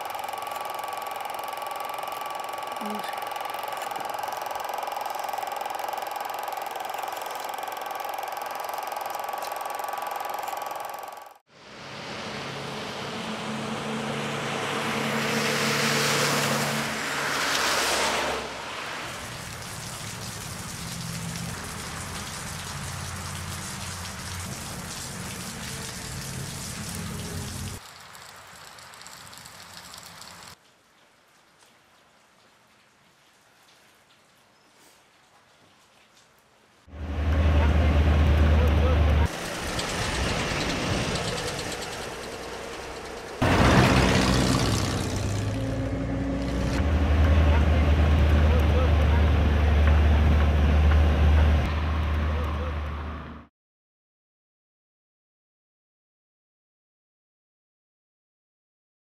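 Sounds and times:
steady whir: 0:00.0 - 0:19.3, 0:37.0 - 0:49.9
rain on wet pavement: 0:18.6 - 0:36.9, 0:39.3 - 0:46.8.

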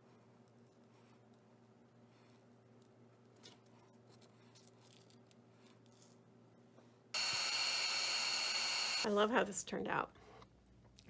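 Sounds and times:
heat gun blowing and whining: 0:07.2 - 0:09.1.

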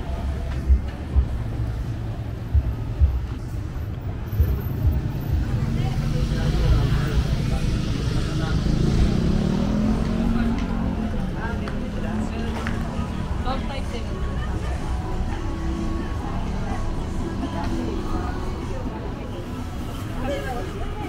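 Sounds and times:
city street traffic: 0:00.0 - 0:21.0
voices of passers-by: 0:00.0 - 0:21.0
car engine hum passing close: 0:05.4 - 0:13.2.

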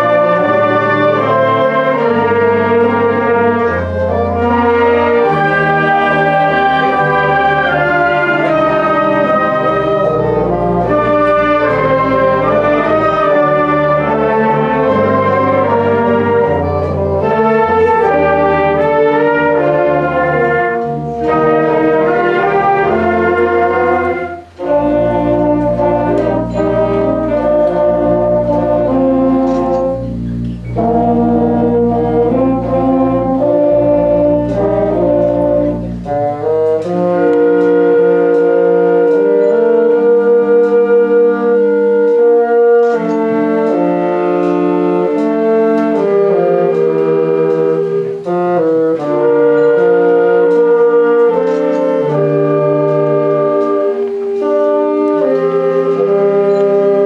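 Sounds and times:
orchestra playing sustained chords: 0:00.0 - 0:57.0.

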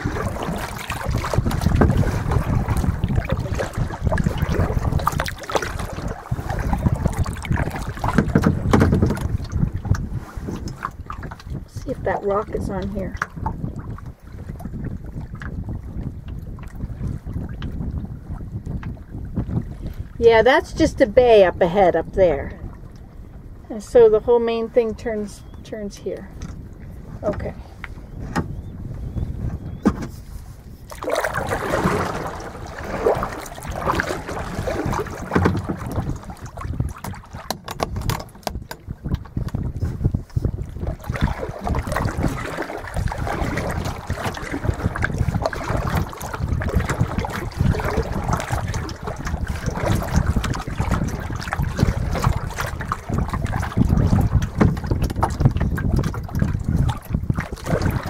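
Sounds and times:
waves lapping against kayak hull: 0:00.0 - 0:58.0
wind rumbling on microphone: 0:00.0 - 0:58.0.

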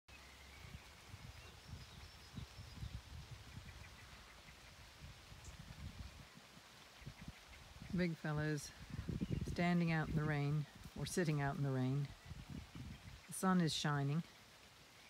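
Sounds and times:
light rain: 0:00.1 - 0:15.0
wind buffeting microphone: 0:00.5 - 0:14.2.

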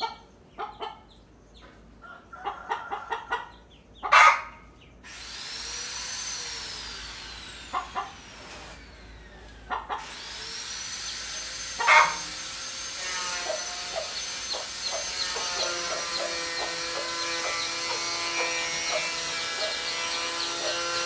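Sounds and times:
hen clucking: 0:00.0 - 0:05.0, 0:09.7 - 0:10.2, 0:11.1 - 0:12.3, 0:13.0 - 0:21.0
hen squawk: 0:04.0 - 0:04.6, 0:11.8 - 0:12.3, 0:13.2 - 0:21.0.

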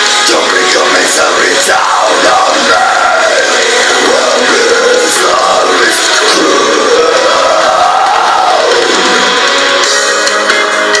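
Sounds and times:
metal backing track: 0:00.0 - 0:11.0
man singing a long note: 0:00.2 - 0:09.1.

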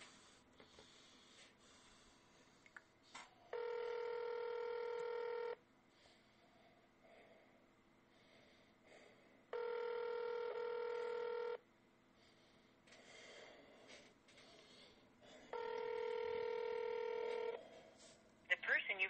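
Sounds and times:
telephone ringback tone: 0:03.5 - 0:05.6, 0:09.6 - 0:11.6, 0:15.5 - 0:17.6.

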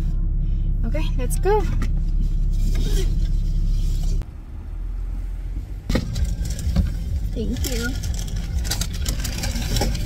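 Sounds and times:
car engine hum inside cabin: 0:00.0 - 0:10.0.

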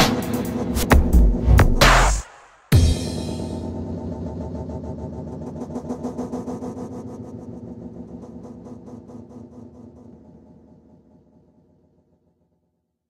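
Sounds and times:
pulsing synthesizer drone: 0:00.0 - 0:12.2.

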